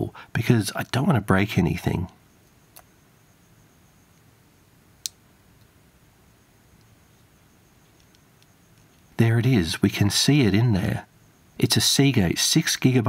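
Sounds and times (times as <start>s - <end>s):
faint ticks: 2.3s - 3.0s, 5.0s - 5.8s, 6.7s - 9.2s.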